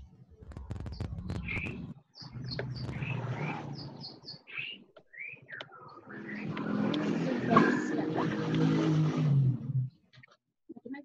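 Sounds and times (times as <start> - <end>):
bird chirping: 0.8 - 8.7.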